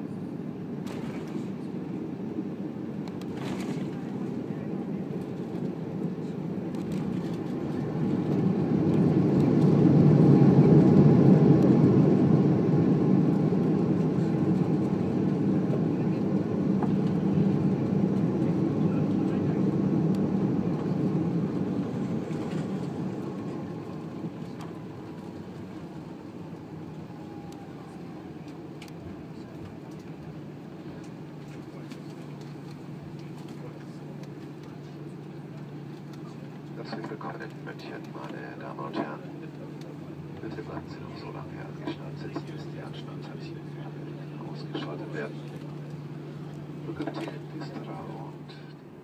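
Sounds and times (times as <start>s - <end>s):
jet noise inside cabin: 0.0s - 49.0s.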